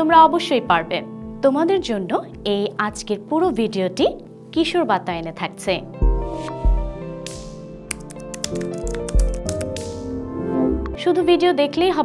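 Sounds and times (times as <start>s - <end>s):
computer keyboard typing: 7.9s - 9.8s.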